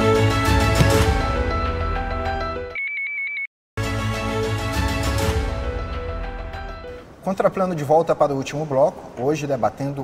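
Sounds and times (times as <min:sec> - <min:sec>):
tv theme music: 0:00.0 - 0:02.8, 0:03.8 - 0:07.0.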